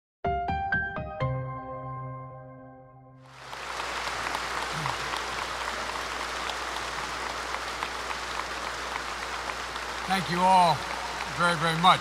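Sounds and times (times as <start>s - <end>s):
audience applauding: 3.3s - 12.0s.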